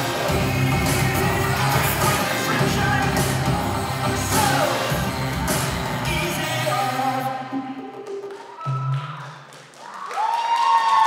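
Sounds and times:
audience applause: 0:08.1 - 0:11.0
audience cheering: 0:08.4 - 0:11.0.

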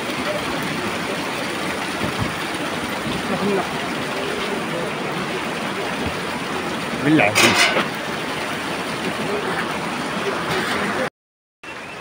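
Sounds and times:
steady rushing outdoor noise: 0:00.0 - 0:11.1.

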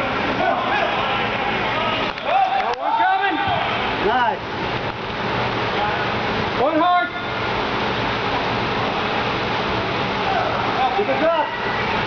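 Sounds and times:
sports hall rushing noise: 0:00.0 - 0:12.0.

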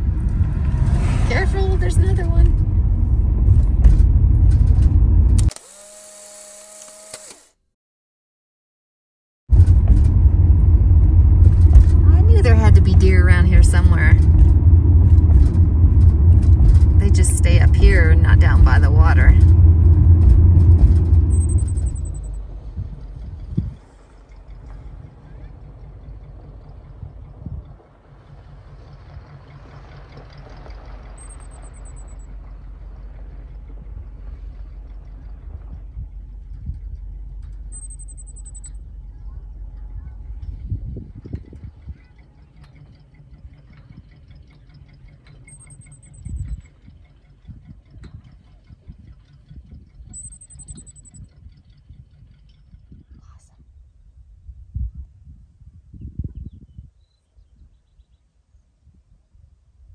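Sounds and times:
wind rumbling on microphone: 0:00.0 - 0:05.5, 0:09.5 - 0:29.4, 0:32.0 - 0:37.8, 0:38.7 - 0:44.5, 0:46.1 - 0:59.9
low thumps: 0:09.5 - 0:23.8.

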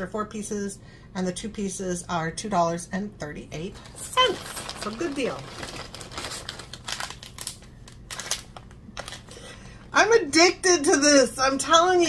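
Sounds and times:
plastic packaging rustling: 0:03.7 - 0:09.6.

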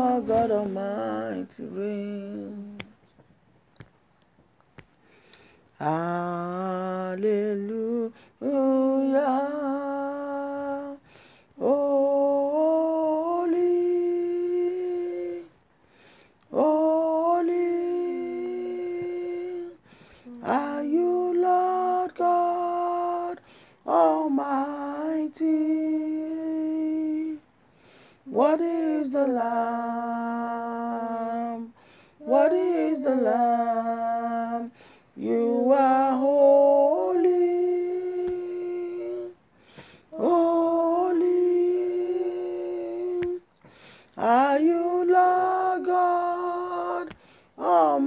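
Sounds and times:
person singing a long note: 0:28.3 - 0:39.4, 0:40.1 - 0:43.4
woman humming: 0:36.3 - 0:39.4, 0:40.1 - 0:43.4
lower voice holding a note: 0:36.8 - 0:39.4, 0:40.2 - 0:43.4.

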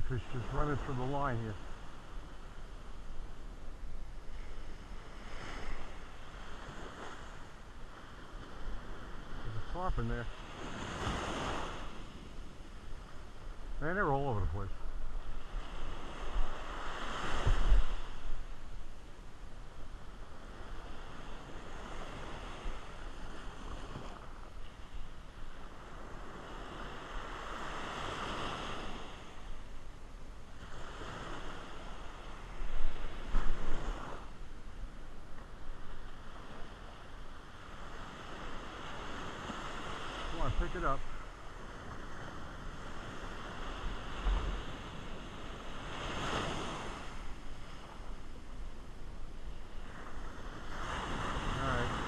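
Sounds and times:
waves breaking on sand: 0:00.0 - 0:52.0
wind on microphone: 0:14.4 - 0:19.1, 0:30.5 - 0:52.0.

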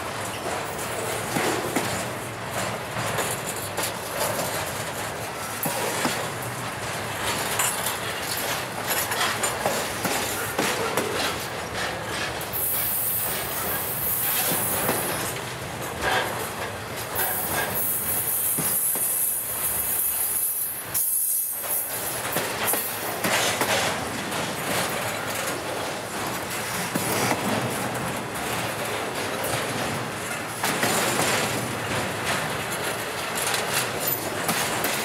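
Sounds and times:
train wheels clattering over rails: 0:00.0 - 0:35.0.

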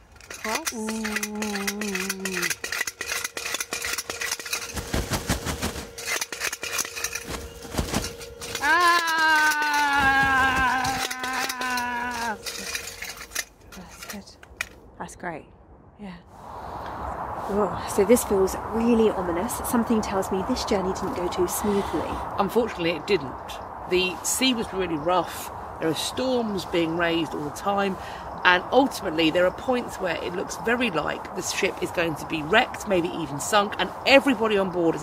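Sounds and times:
spoon rattling on metal dish: 0:00.0 - 0:05.0, 0:05.9 - 0:14.2
long wavering wail: 0:08.1 - 0:13.0.

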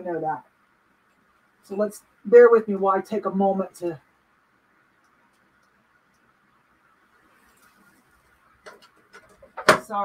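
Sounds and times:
woman speaking: 0:00.0 - 0:00.5, 0:01.7 - 0:04.0, 0:09.7 - 0:10.0.

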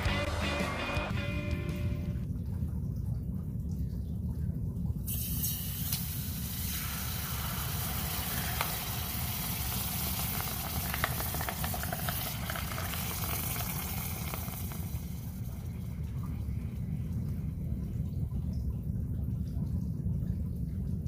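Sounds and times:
hot metal sizzling in water: 0:05.1 - 0:15.5.

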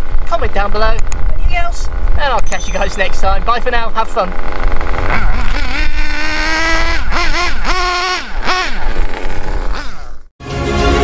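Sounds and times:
nitro engine revving: 0:04.0 - 0:10.3.

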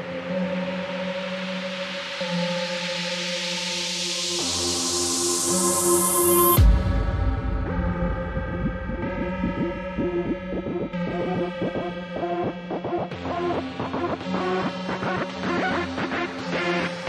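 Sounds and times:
industrial electronic music: 0:00.0 - 0:17.0.

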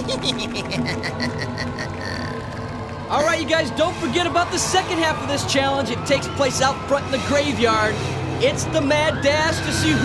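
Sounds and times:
low held drone: 0:00.0 - 0:10.0.

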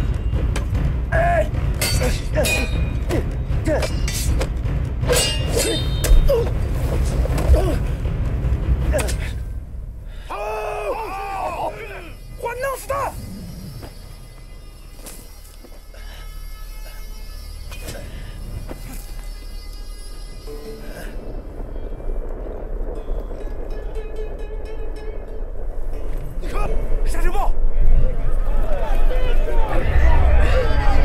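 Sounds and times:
sharp strikes: 0:00.0 - 0:09.9
low rumble: 0:00.0 - 0:16.0, 0:17.5 - 0:31.0
dramatic film score: 0:00.0 - 0:31.0.

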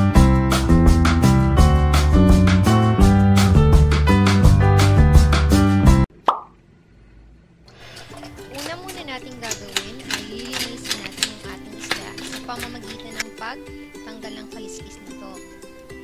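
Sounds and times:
background music: 0:00.0 - 0:06.1, 0:07.8 - 0:16.0
plop-like effect: 0:06.3 - 0:06.6.

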